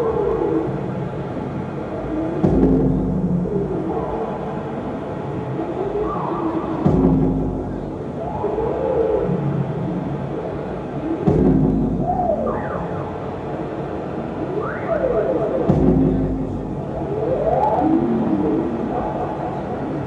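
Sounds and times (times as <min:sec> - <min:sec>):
electronic noise drone: 0:01.7 - 0:20.0
low thud: 0:02.4 - 0:03.8, 0:06.8 - 0:08.1, 0:11.2 - 0:12.6, 0:15.7 - 0:17.0.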